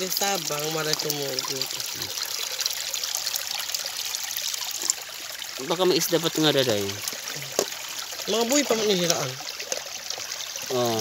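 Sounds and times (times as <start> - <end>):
water pouring out of a pot: 0.0 - 11.0.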